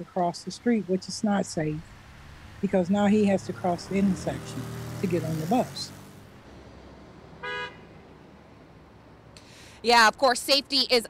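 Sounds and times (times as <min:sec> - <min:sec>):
faint low street rumble: 0:00.0 - 0:11.0
short car horn toot: 0:07.4 - 0:07.9.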